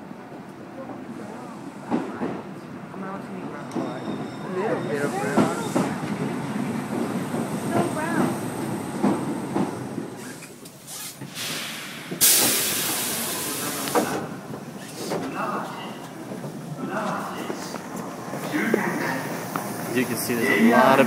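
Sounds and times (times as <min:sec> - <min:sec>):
passengers' voices: 0:00.0 - 0:21.0
compressed-air hiss from train: 0:10.2 - 0:14.1.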